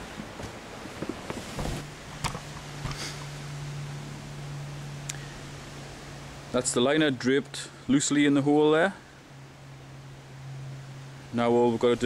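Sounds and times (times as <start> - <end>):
pond liner rustling and knocking: 0.0 - 3.3
steady low hum: 0.0 - 12.0.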